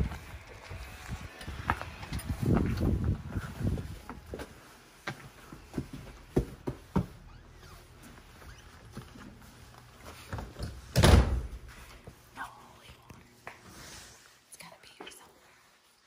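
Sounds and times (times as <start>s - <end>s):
heavy door thudding shut: 10.9s - 11.6s.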